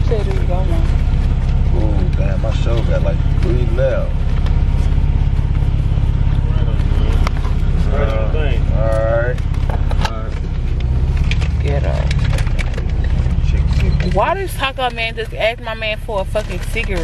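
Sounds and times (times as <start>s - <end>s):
car engine and road rumble: 0.0s - 17.0s.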